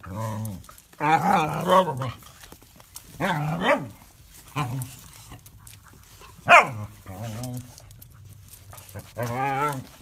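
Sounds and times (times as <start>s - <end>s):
small dog barking: 3.2s - 4.0s, 6.4s - 7.0s.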